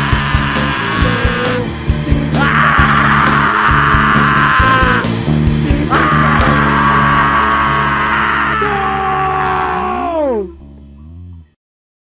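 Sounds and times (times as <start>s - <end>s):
distorted guitar chord: 0.0s - 11.0s
low amplifier hum: 0.0s - 11.6s.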